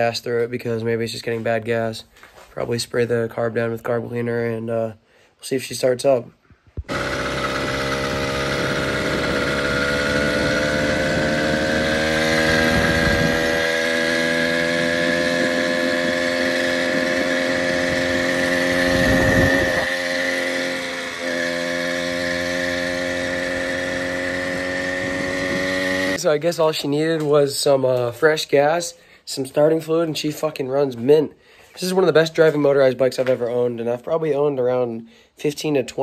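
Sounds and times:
small engine running: 0:06.8 - 0:26.2.

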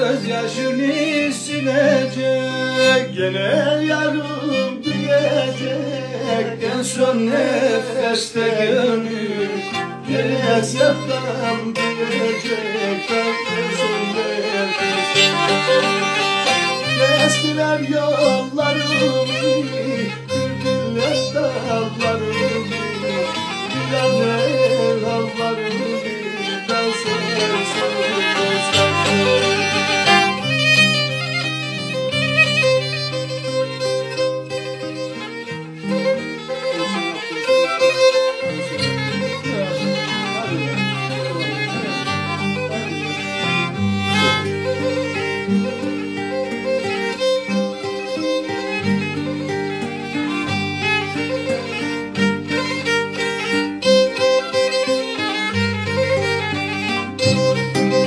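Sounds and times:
acoustic guitar low notes: 0:00.0 - 0:58.0.

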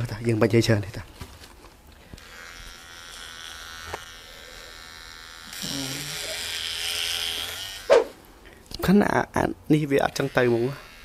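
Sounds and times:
electric hair clipper buzzing: 0:02.1 - 0:07.9, 0:10.0 - 0:11.0.

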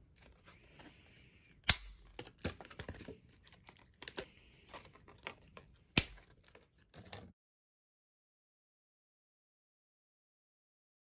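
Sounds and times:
acrylic sheet clicking and snapping: 0:05.2 - 0:07.2.

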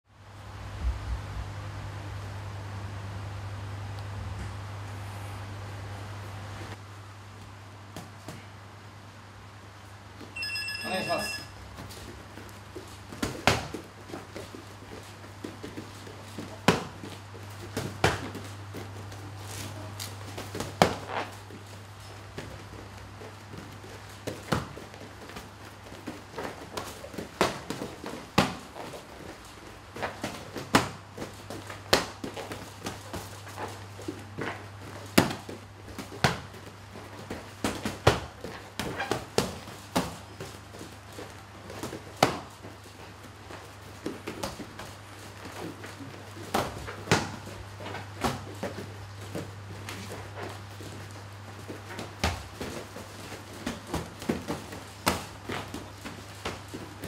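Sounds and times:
round timer beeping: 0:10.4 - 0:11.5.

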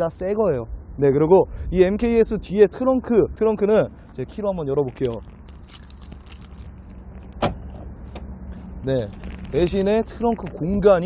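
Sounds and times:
car key rattling: 0:05.1 - 0:07.7.

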